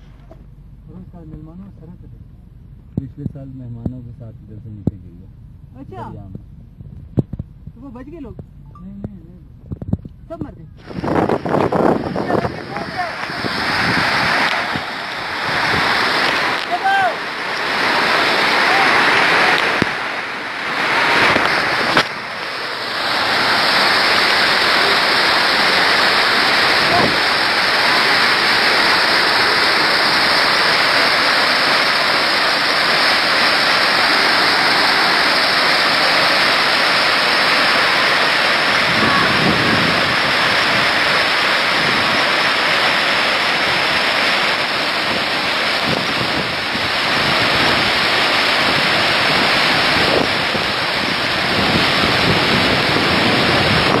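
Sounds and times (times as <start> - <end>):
river rapids rushing: 10.8 - 54.0.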